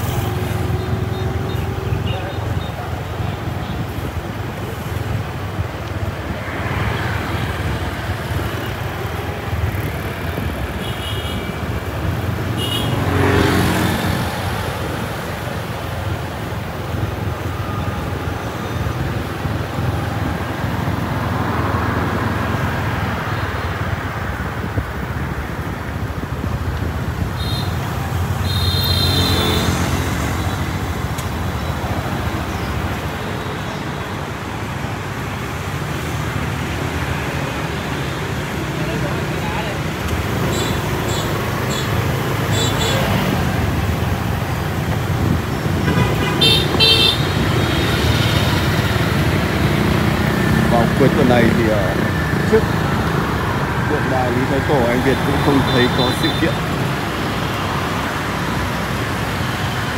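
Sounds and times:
street traffic rumble: 0.0s - 59.9s.

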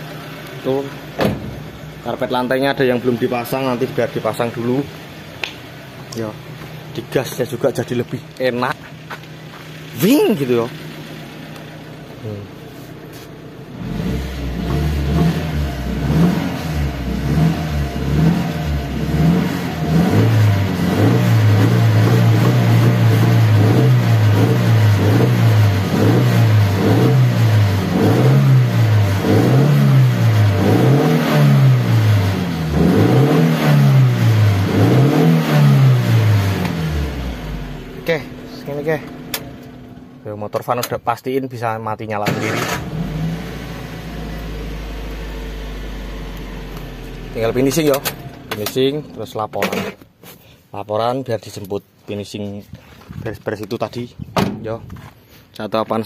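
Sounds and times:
van engine revving: 0.0s - 40.3s, 42.2s - 50.0s.

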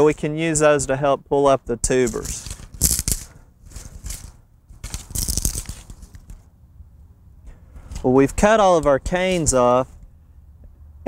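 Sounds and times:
dry stalks rustling and crackling: 1.9s - 6.5s.

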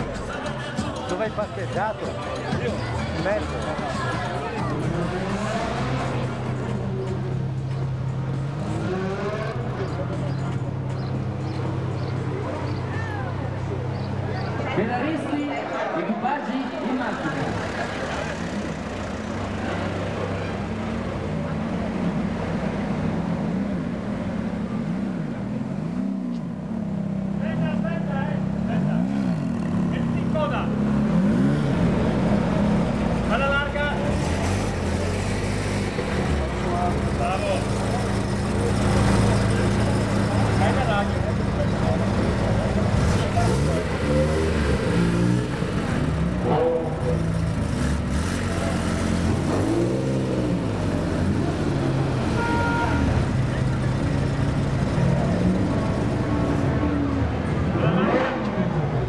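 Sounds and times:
people talking: 0.0s - 6.2s, 33.2s - 34.6s, 36.0s - 44.2s
sports car engines passing: 0.0s - 59.0s.

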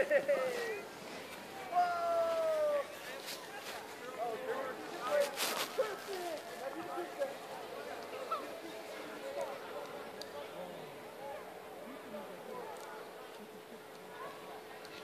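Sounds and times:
short calls and chatter: 0.0s - 15.0s.

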